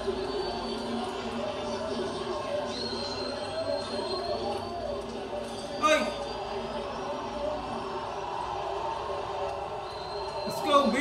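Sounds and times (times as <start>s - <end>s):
stadium crowd murmur on television: 0.0s - 11.0s.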